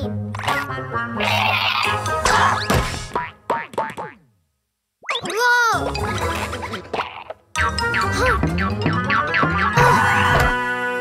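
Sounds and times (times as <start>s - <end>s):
cartoon springy boings: 5.0s - 10.6s.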